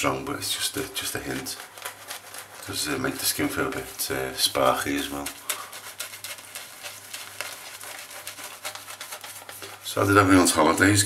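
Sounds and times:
razor scraping stubble: 1.0s - 10.1s.

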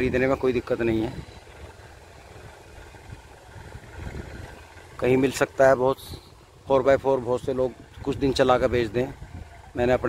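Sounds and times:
distant tractor engine running: 0.0s - 10.0s.

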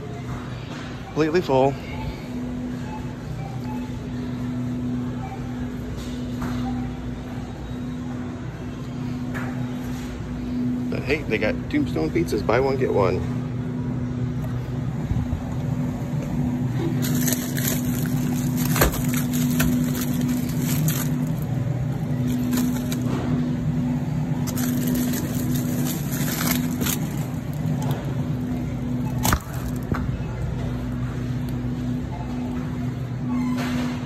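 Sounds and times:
steady low hum: 0.0s - 33.4s
freezer door rattling and clicking: 16.9s - 23.1s, 24.4s - 28.0s.

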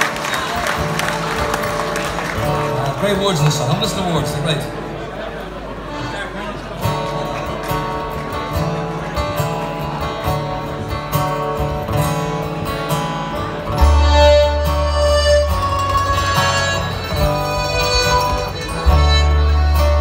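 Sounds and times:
folk band acoustic guitars and accordion: 0.0s - 20.0s.

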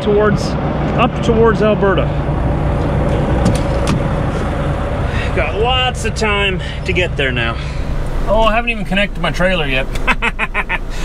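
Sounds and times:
man talking: 0.0s - 2.2s, 5.2s - 10.1s
diesel truck engine idling: 0.0s - 11.0s.

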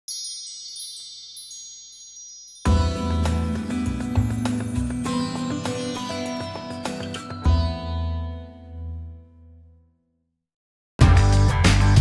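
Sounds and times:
high bright chimes ringing: 0.0s - 8.6s.

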